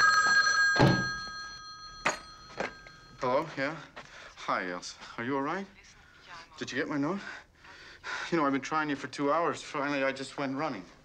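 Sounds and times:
telephone bell ringing: 0.0 - 3.8
thunk: 0.8 - 1.2.

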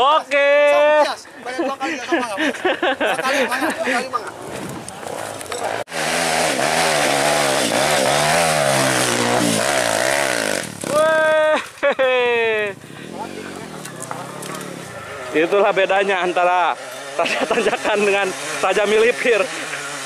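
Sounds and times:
man shouting: 0.0 - 1.2, 10.9 - 11.6
dirt bike engine revving: 4.5 - 11.3, 12.0 - 20.0.

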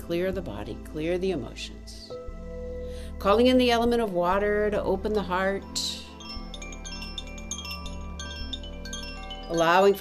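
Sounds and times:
wind chime ringing: 5.8 - 10.0.

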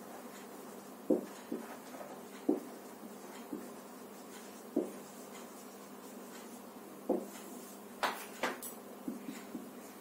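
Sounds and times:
marker scratching on whiteboard: 0.0 - 7.8.

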